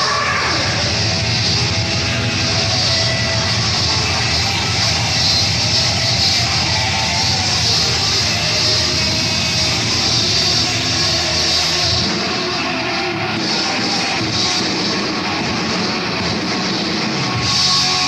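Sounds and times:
cymbals: 0.0s - 18.0s
distorted electric guitars: 0.0s - 18.0s.

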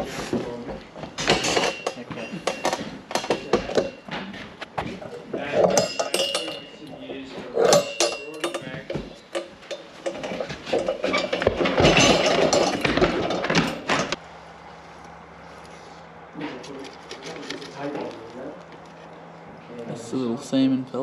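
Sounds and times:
voices: 0.0s - 11.0s, 15.0s - 21.0s
steady low hum: 0.0s - 21.0s
metal clinking and knocking: 1.0s - 14.2s.

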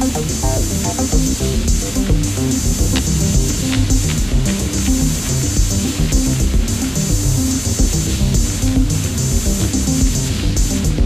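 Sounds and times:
drum machine pattern: 0.0s - 11.0s
sequenced bass synthesizer lines: 0.0s - 11.0s.

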